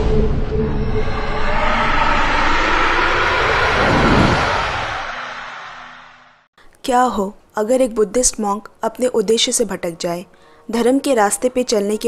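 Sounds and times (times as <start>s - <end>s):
loud rushing whoosh: 0.0s - 6.5s.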